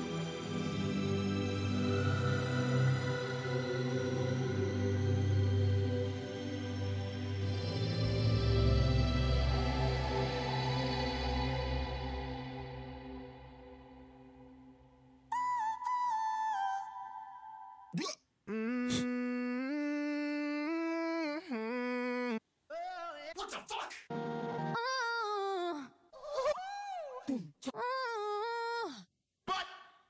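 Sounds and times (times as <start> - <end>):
ambient synth pad: 0.0 - 15.2
short sung vocal samples: 15.3 - 23.1.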